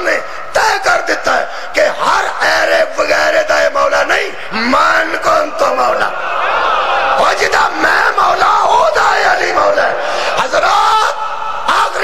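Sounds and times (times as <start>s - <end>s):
crowd of men shouting: 5.9s - 12.0s.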